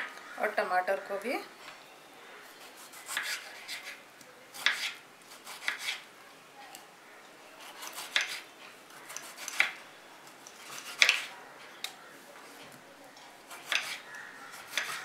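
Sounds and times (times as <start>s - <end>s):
knife slicing tomato: 2.6s - 6.1s, 7.6s - 9.8s, 10.6s - 11.3s, 13.5s - 15.0s.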